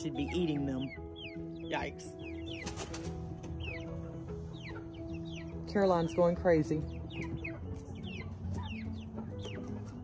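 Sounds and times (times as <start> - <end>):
chickens peeping: 0.0 - 10.0.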